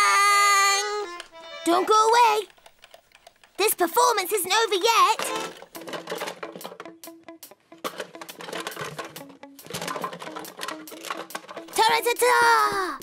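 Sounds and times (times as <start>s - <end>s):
light cartoon music: 0.0s - 2.5s, 3.6s - 13.0s
toys clattering in a box: 2.4s - 7.0s, 7.8s - 12.5s.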